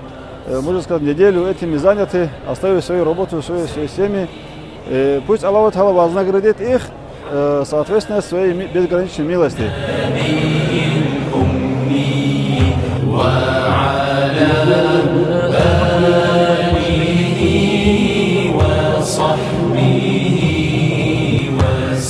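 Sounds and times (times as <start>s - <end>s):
men chanting melodically: 8.1s - 22.0s.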